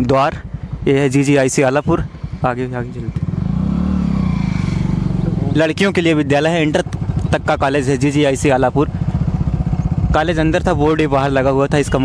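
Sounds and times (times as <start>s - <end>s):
vehicle engine revving: 1.6s - 7.7s.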